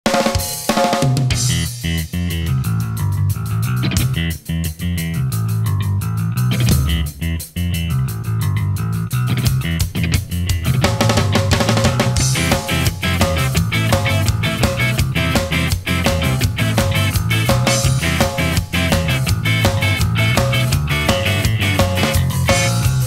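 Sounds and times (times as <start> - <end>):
drum kit beat: 0.0 - 23.0
bass line: 1.1 - 23.0
electric guitar: 1.2 - 23.0.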